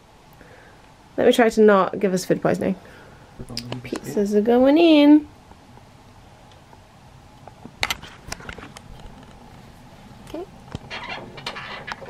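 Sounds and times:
light clatters: 10.2 - 12.0.

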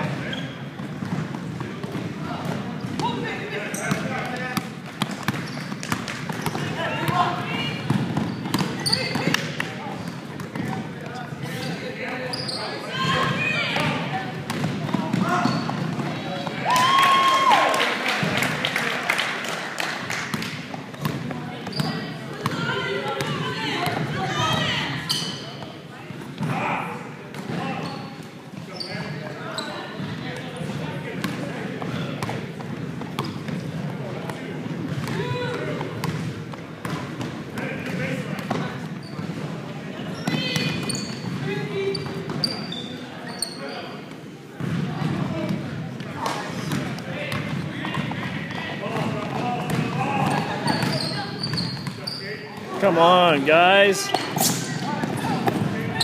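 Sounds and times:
basketball bouncing on hardwood floor: 14.5 - 16.2.

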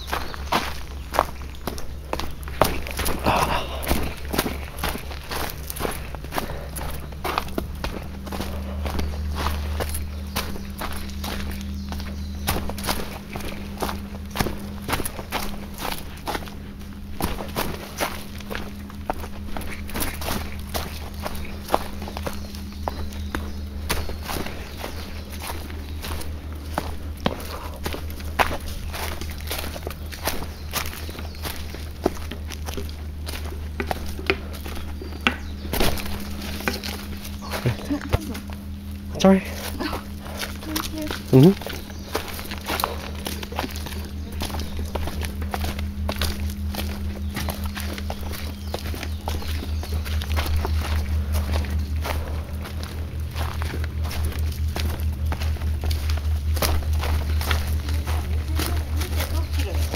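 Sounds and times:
footsteps on dry leaves and dirt: 0.0 - 59.9.

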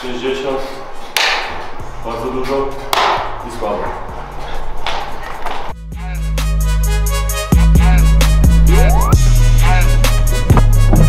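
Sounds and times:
background music: 0.0 - 11.0
music with deep heavy bass: 5.8 - 11.0.

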